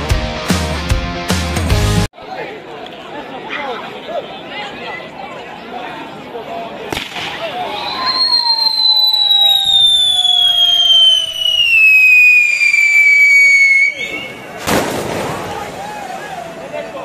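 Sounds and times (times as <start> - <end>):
firework lighting crack: 6.9 - 16.0
fainter lower whistle: 7.7 - 14.6
firework whistling: 7.7 - 15.5.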